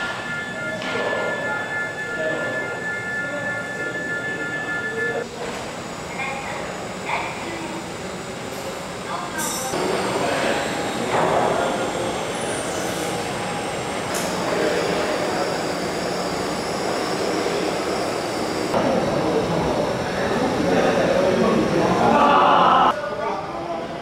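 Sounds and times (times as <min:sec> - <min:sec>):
indistinct voices: 0:00.0 - 0:24.0.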